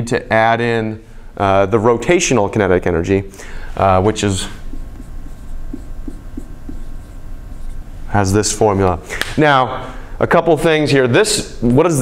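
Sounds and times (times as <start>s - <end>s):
low room hum: 0.0s - 12.0s
marker squeaking on whiteboard: 4.4s - 8.0s.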